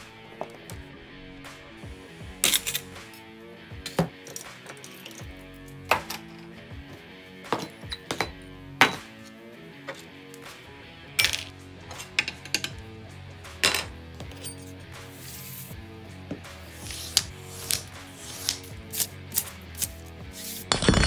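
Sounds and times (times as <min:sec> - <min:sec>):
background music: 0:00.0 - 0:21.0
ceramic cups clinking on workbench: 0:07.5 - 0:09.2, 0:13.6 - 0:14.6.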